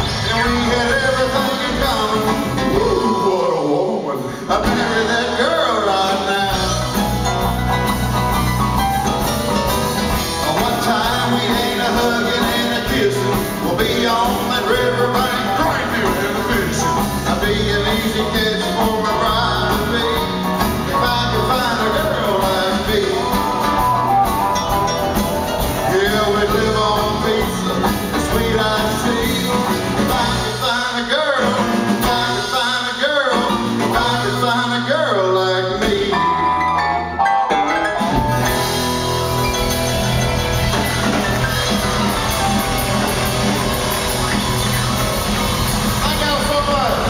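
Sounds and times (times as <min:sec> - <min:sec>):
drum kit: 0:00.0 - 0:36.6, 0:37.4 - 0:47.0
bass: 0:00.0 - 0:47.0
guitars: 0:00.0 - 0:47.0
live country band playing: 0:00.0 - 0:47.0.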